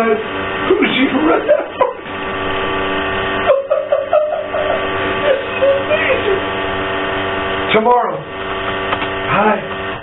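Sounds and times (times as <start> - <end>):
electrical hum: 0.0 - 10.0
man laughing: 0.7 - 2.1, 3.4 - 6.4.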